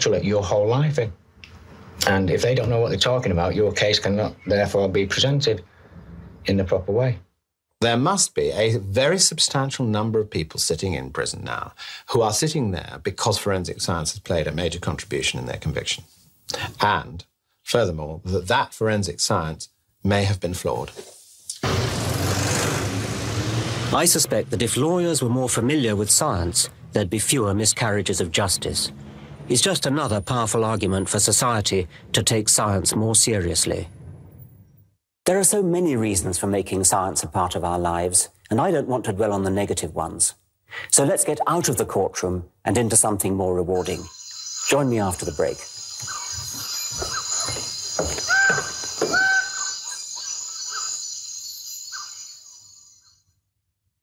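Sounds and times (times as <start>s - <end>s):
tyre and road noise: 21.6s - 24.6s, 26.0s - 32.1s, 45.9s - 49.8s
cars driving past: 21.6s - 24.8s, 26.0s - 30.2s
bird calls: 43.8s - 53.2s
high-pitched insect buzz: 43.8s - 53.2s.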